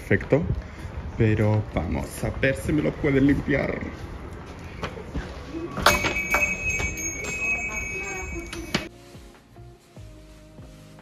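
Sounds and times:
glass door opening clack: 5.8 - 7.5
high door chime ringing: 5.8 - 8.9.

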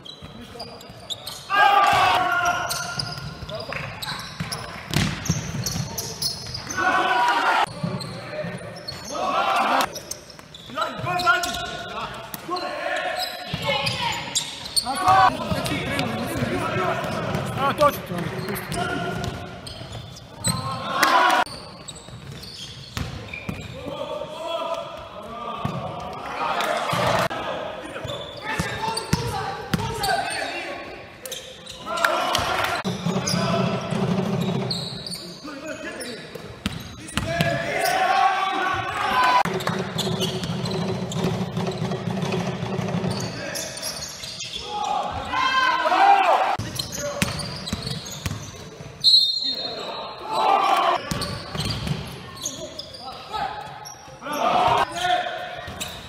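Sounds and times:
sneakers squeaking: 0.0 - 24.1, 24.7 - 45.8, 46.5 - 56.0
players shouting: 1.5 - 3.2, 6.7 - 7.7, 9.0 - 9.9, 14.8 - 19.5, 20.4 - 21.5, 31.8 - 33.8, 37.1 - 39.5, 44.5 - 46.6, 49.9 - 51.1, 54.2 - 55.6
players calling out: 5.6 - 22.6.

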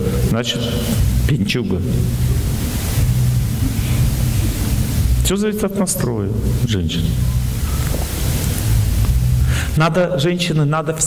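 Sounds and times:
steady hiss: 0.0 - 11.0
low rumble: 1.0 - 9.6
person speaking: 5.2 - 8.0.

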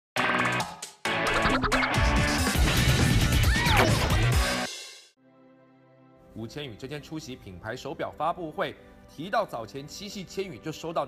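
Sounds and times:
upbeat music with heavy bass: 0.2 - 5.0.

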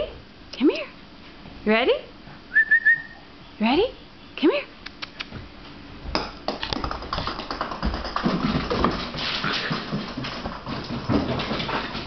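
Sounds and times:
puppy claws skittering on wood floor: 6.1 - 12.0.

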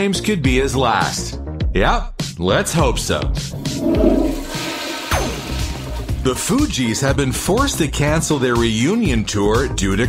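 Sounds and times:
low rumble: 3.5 - 4.7
falling whoosh: 3.5 - 4.8
rushing water: 3.6 - 6.2.

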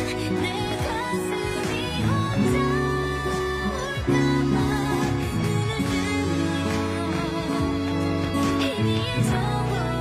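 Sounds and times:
acoustic guitar chords: 0.0 - 10.0.

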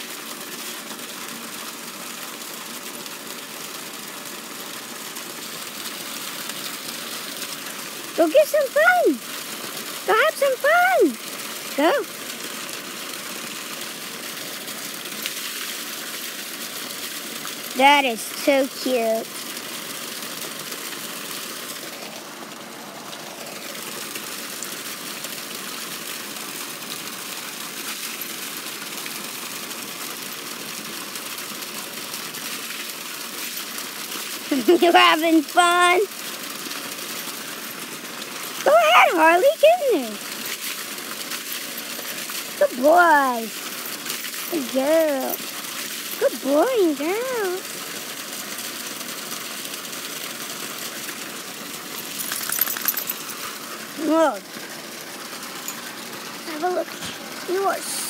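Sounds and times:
water splashing from garden hose: 0.0 - 58.0.

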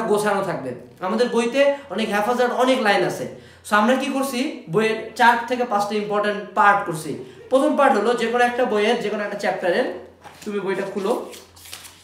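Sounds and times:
book pages flipping: 10.2 - 12.0.

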